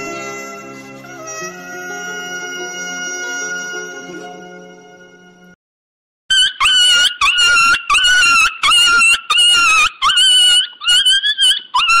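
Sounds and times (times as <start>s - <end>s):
animal high-pitched calls: 6.3s - 12.0s.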